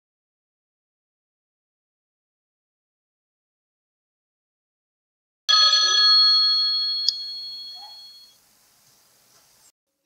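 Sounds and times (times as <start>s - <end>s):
bell-like phone ringtone chime: 5.5s - 8.4s.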